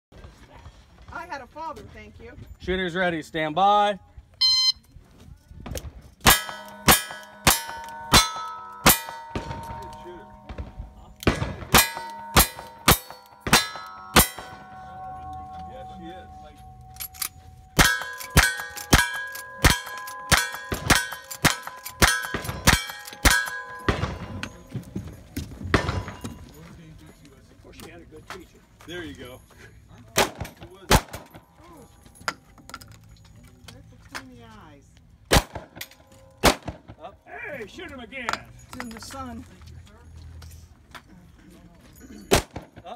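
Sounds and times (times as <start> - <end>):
gunshots: 6.2 - 15.0, 17.8 - 24.7, 30.2 - 31.4, 35.3 - 35.8, 36.4 - 37.0
steel target clanging: 6.2 - 26.6.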